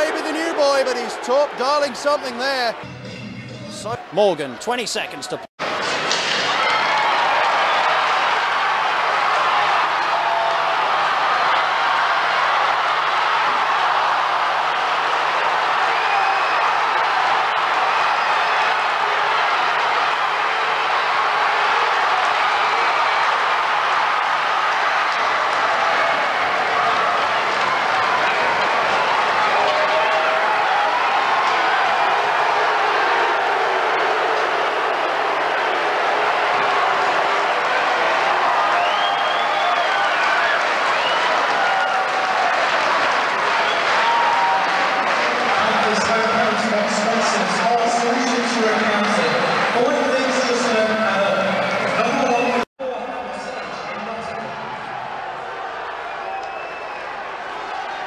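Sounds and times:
crowd cheering and applauding: 0.0 - 3.1, 3.8 - 52.5, 54.3 - 58.0.

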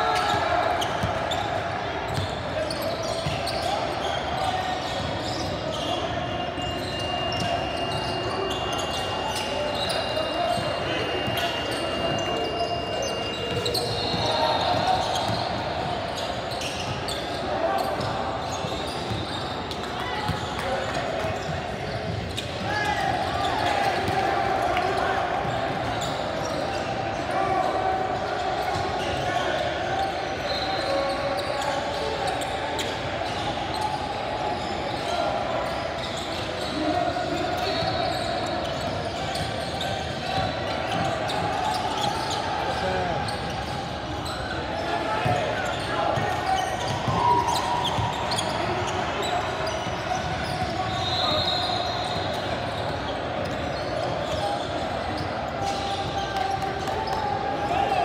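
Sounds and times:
indistinct shouting and chatter: 0.0 - 58.0.

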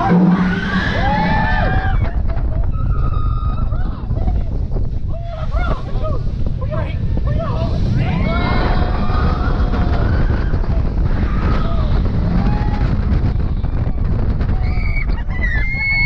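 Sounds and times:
riders screaming and whooping: 0.0 - 16.0
wind rushing over microphone: 0.0 - 16.0.

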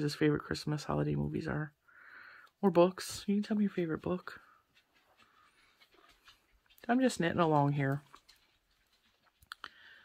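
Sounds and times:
person speaking: 0.0 - 1.8, 2.5 - 8.5
knitting needles ticking: 3.5 - 10.0.

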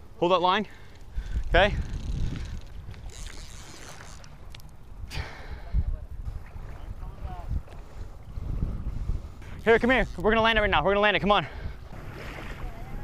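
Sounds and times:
wind buffeting microphone: 1.0 - 13.0.

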